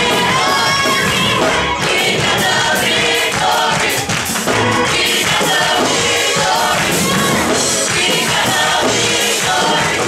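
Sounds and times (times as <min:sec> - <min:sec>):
gospel choir singing: 0:00.0 - 0:10.0
musical accompaniment: 0:00.0 - 0:10.0.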